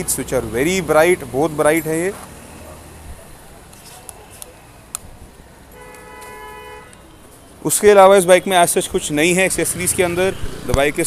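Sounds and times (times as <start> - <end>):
vehicle horn honking: 5.8 - 7.2.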